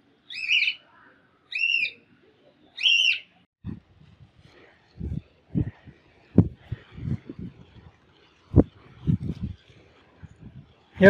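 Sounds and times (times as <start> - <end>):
caged birds calling: 0.3 - 0.8, 1.5 - 2.1, 2.7 - 3.4.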